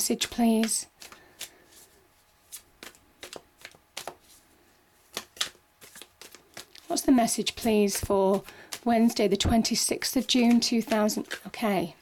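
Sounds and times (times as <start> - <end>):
cards being shuffled: 0.2 - 4.4, 5.0 - 11.9.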